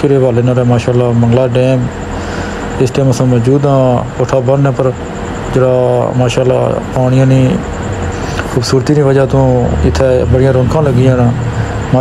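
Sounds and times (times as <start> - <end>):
man speaking: 0.0 - 2.0, 2.7 - 12.0
moving car rumble: 9.2 - 12.0.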